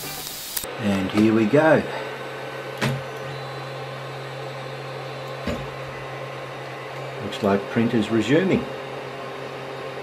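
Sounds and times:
three-d printer humming: 1.4s - 10.0s.

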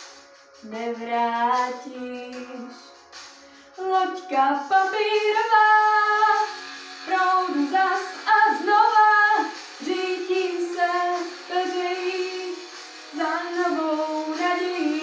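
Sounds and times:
girl singing pop song: 0.0s - 15.0s.

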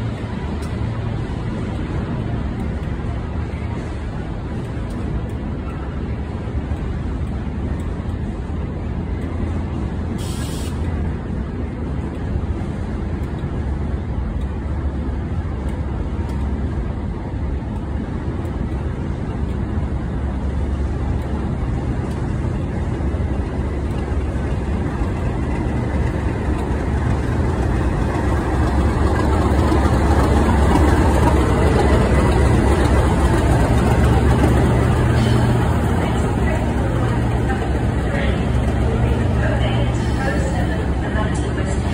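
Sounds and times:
diesel locomotive engine running: 0.0s - 41.9s.

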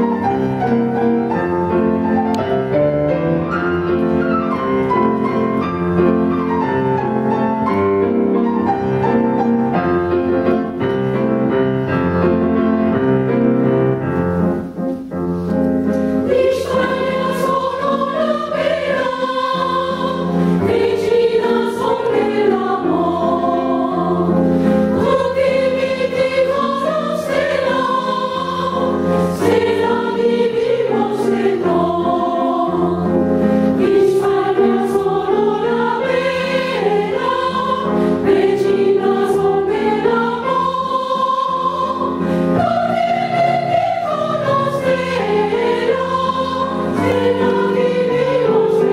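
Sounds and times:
women's choir singing: 16.2s - 48.9s.

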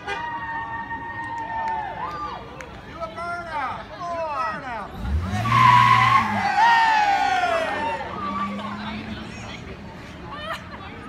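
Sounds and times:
truck engine revving: 4.9s - 10.0s.

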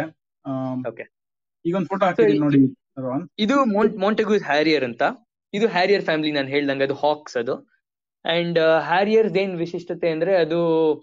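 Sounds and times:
person talking: 1.7s - 4.6s.

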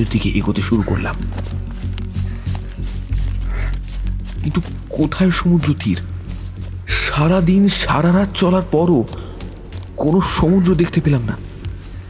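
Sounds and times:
man narrating: 0.0s - 2.1s, 4.3s - 12.0s
music with low drone: 0.0s - 12.0s.

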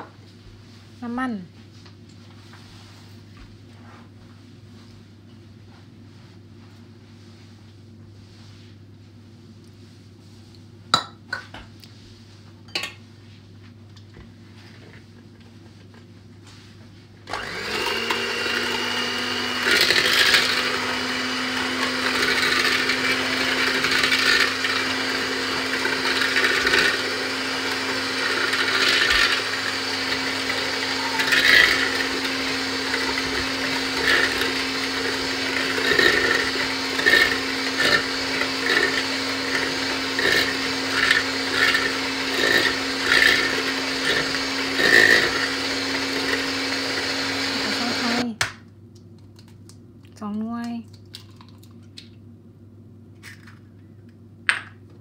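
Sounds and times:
electric hand mixer humming: 17.3s - 48.3s.

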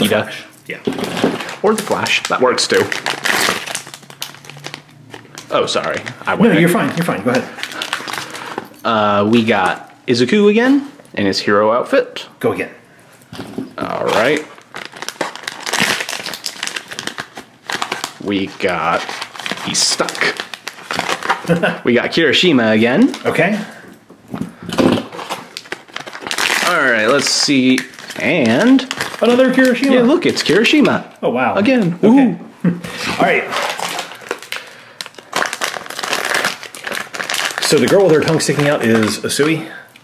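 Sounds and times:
foil bag crinkling: 0.8s - 9.7s, 13.3s - 21.8s, 22.6s - 31.0s, 32.9s - 40.0s.

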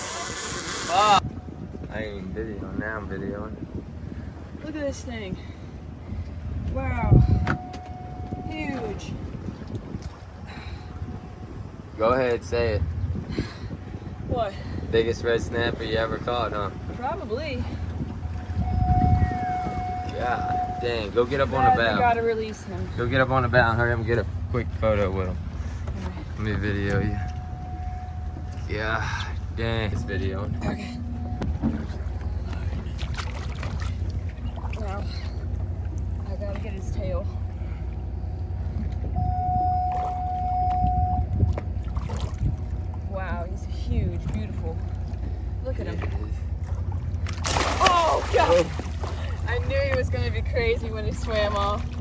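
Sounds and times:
boat rumbling on water: 0.0s - 52.0s
steady high tone: 18.3s - 22.2s, 26.9s - 32.8s, 38.4s - 41.8s.

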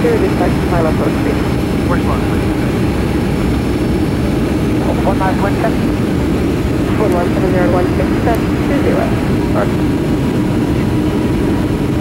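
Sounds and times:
person talking: 0.0s - 2.7s, 4.8s - 5.8s, 6.9s - 9.8s
aircraft cabin engine drone: 0.0s - 12.0s.

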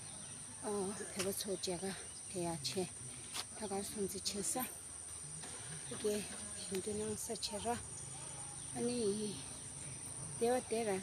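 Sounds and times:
woman talking: 0.6s - 2.9s, 3.6s - 4.8s, 5.9s - 7.8s, 8.8s - 9.6s, 10.4s - 11.0s.

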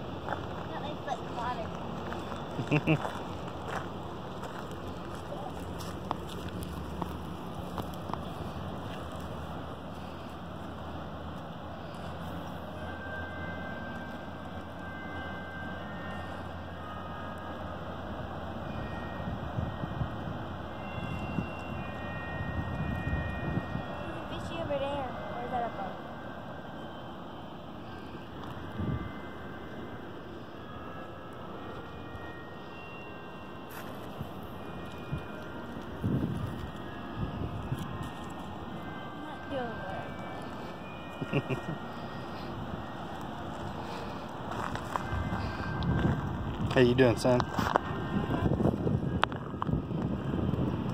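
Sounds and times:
wind rumbling on microphone: 35.9s - 38.2s, 44.6s - 50.9s.

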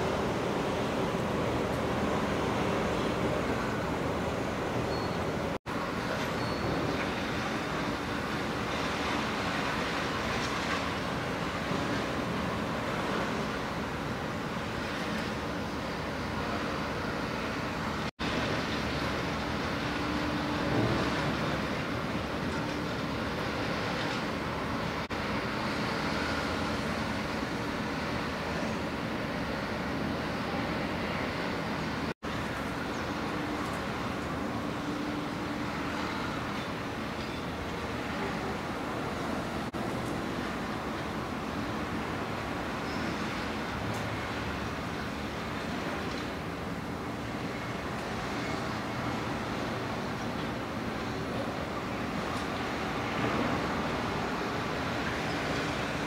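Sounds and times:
outdoor rumble and hiss: 0.0s - 56.0s.

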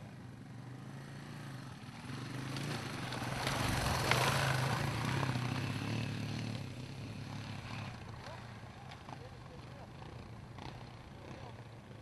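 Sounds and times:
motorbike engine passing: 0.0s - 12.0s.

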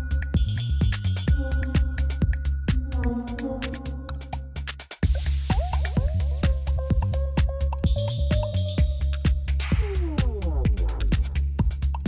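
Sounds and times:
minimal techno beat: 0.0s - 12.0s
hiss: 5.0s - 6.4s.

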